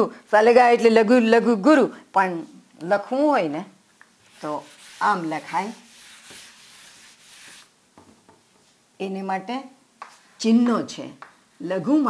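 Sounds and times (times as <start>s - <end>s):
duster rubbing on a chalkboard: 4.2s - 7.7s.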